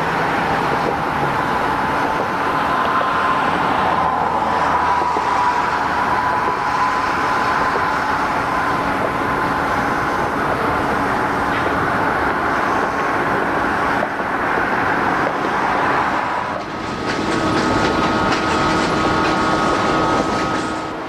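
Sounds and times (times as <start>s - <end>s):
road traffic passing: 0.0s - 21.0s.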